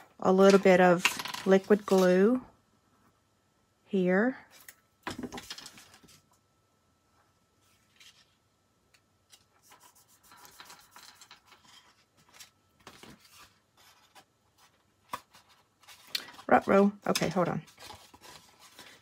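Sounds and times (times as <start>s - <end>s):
cardstock rustling: 10.6s - 19.0s.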